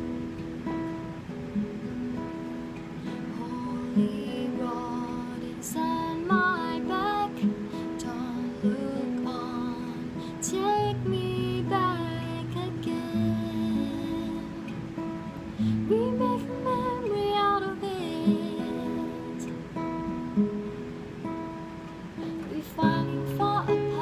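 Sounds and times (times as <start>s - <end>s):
acoustic guitar: 0.0s - 24.0s
woman singing: 3.0s - 19.7s, 22.2s - 24.0s.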